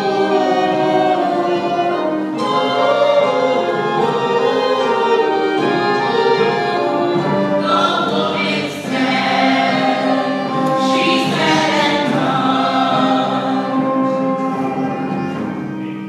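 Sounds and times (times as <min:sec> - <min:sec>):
cast singing in choral harmony: 0:00.0 - 0:15.0.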